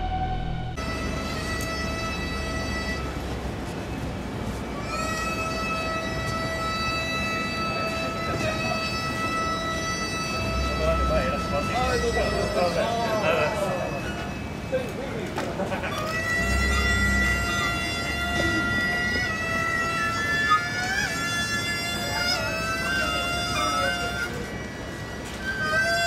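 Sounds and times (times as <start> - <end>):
title music: 0.0 - 0.9
low street rumble: 0.0 - 26.0
wind instrument long notes: 0.0 - 26.0.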